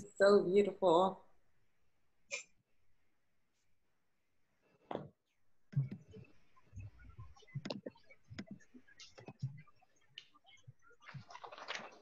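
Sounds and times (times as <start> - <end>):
woman speaking: 0.0 - 1.2.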